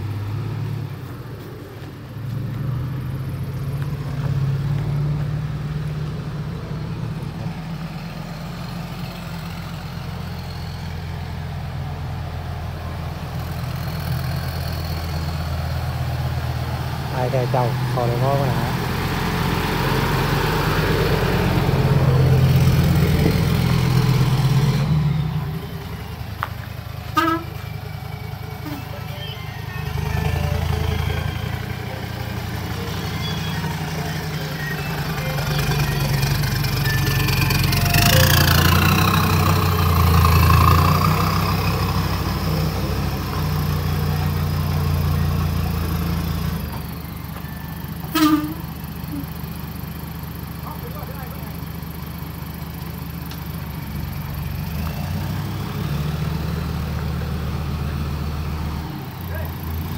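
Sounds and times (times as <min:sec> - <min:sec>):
diesel truck engine running: 0:00.0 - 0:59.9.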